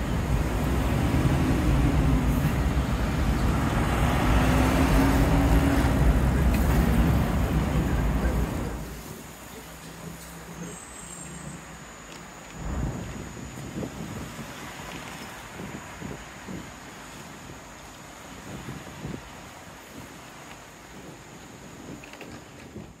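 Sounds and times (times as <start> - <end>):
wind buffeting microphone: 0.0 - 9.4, 12.6 - 23.0
cars passing: 0.0 - 11.8
low rumble: 12.5 - 14.5.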